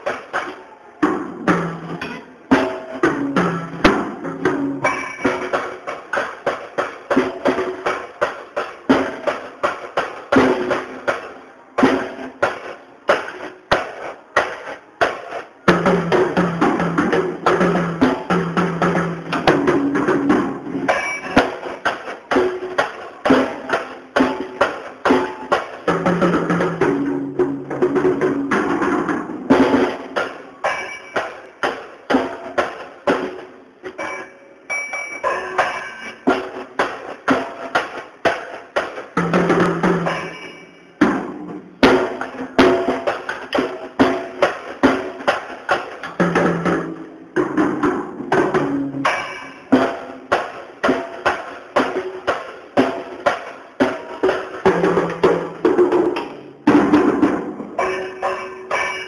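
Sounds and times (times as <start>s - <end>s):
child playing drum kit: 0.0s - 59.0s.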